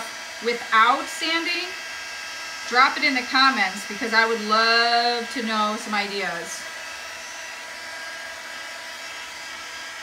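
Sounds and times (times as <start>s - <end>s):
heat tool fan blowing: 0.0s - 10.0s.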